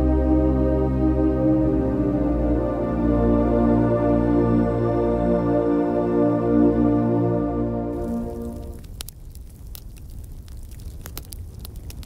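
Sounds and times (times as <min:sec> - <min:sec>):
fire crackling: 0:07.8 - 0:12.0.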